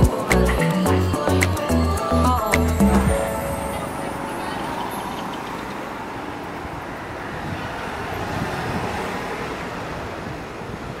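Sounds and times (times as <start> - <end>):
cars passing: 0.0 - 11.0.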